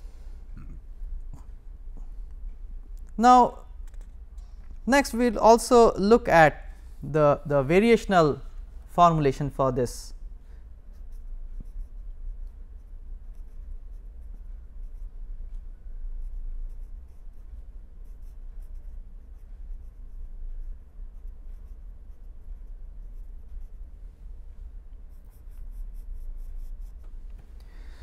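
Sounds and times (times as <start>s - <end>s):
steady low hum: 0.0s - 28.0s
pen scratching on paper: 10.9s - 15.2s, 16.1s - 23.8s, 25.1s - 27.0s.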